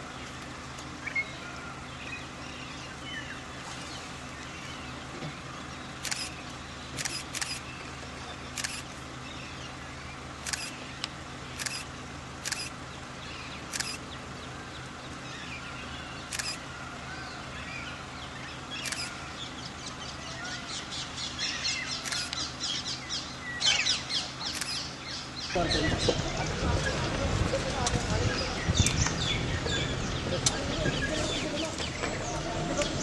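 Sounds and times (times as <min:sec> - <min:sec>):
bird calls: 0:00.1 - 0:27.2, 0:27.8 - 0:33.0
camera shutters clicking: 0:06.0 - 0:06.4, 0:07.0 - 0:07.6, 0:08.6 - 0:08.9, 0:10.4 - 0:10.8, 0:11.6 - 0:12.7, 0:13.7 - 0:14.0, 0:16.3 - 0:16.6, 0:18.8 - 0:19.2, 0:22.0 - 0:22.4, 0:24.5 - 0:24.9.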